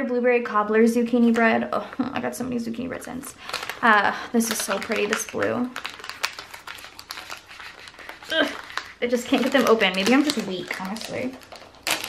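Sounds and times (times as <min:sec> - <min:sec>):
foil pouch crinkling: 0:03.3 - 0:12.0.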